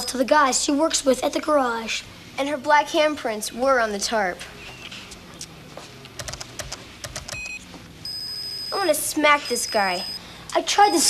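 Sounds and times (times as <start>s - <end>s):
keyboard keys clicking: 6.2s - 7.5s
short electronic beep: 7.4s - 10.2s
steady high electronic tone: 8.0s - 11.0s.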